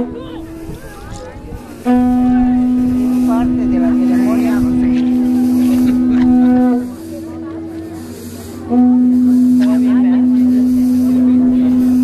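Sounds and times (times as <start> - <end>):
faint voices: 0.0 - 12.0
low horn-like tone: 1.7 - 12.0.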